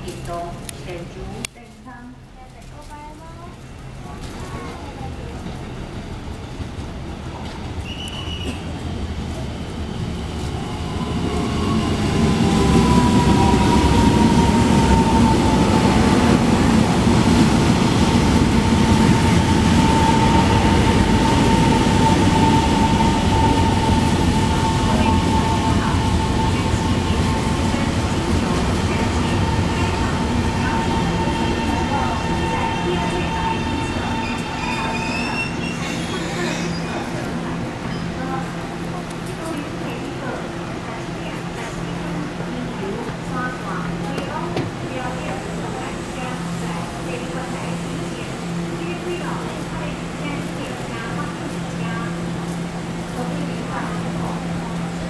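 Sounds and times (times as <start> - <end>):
train wheels rumbling: 2.5 - 55.0
high brake squeal: 7.8 - 8.6, 32.8 - 37.1.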